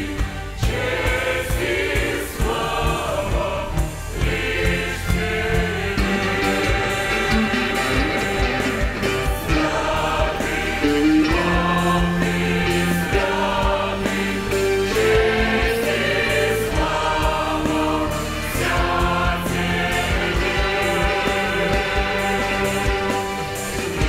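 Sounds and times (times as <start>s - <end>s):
choir singing a hymn: 0.0s - 24.0s
church orchestra playing: 0.0s - 24.0s.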